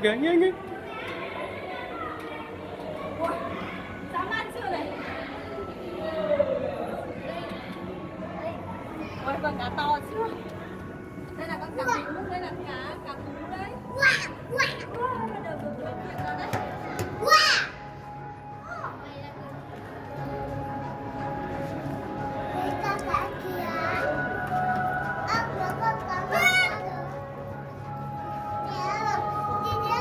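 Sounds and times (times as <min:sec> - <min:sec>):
background music: 0:00.0 - 0:30.0
indistinct chatter of people: 0:00.0 - 0:30.0
children's voices and calls: 0:00.7 - 0:06.2, 0:11.4 - 0:15.5, 0:16.7 - 0:19.5, 0:22.3 - 0:27.5, 0:28.4 - 0:30.0.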